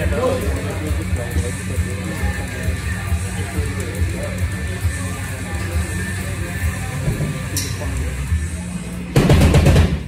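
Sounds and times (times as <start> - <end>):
distorted guitar and bass drone: 0.0 - 10.0
rapid drum hits with band: 9.1 - 10.0.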